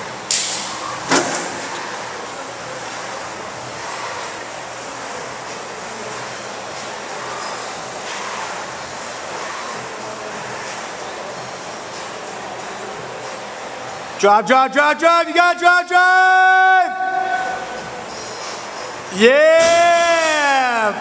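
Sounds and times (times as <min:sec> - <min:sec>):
room background noise: 0:00.0 - 0:21.0.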